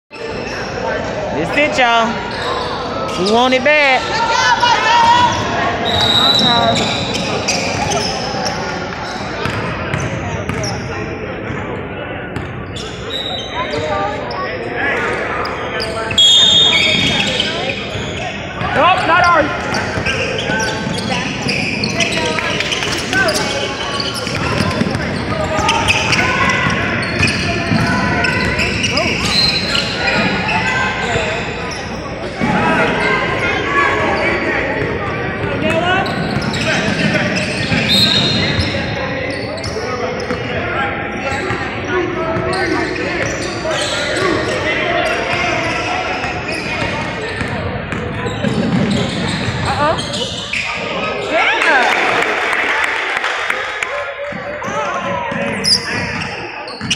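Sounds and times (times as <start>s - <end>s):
indistinct shouts and chatter: 0.1s - 56.9s.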